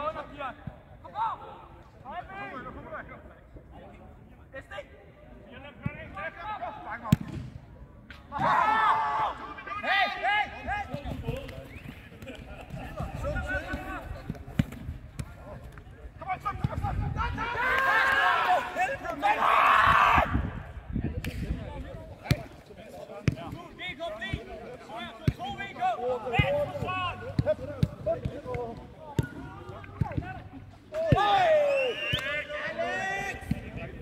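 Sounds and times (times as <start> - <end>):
players shouting: 16.2 - 20.6, 23.4 - 34.0.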